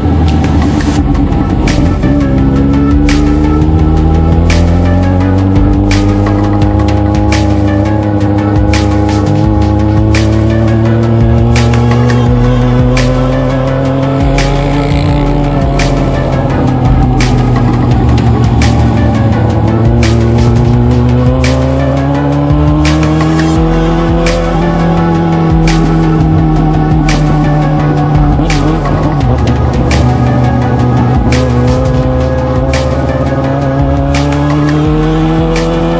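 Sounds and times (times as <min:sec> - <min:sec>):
electronic music with a beat: 0:00.0 - 0:35.9
motorcycle engine accelerating: 0:00.0 - 0:35.9.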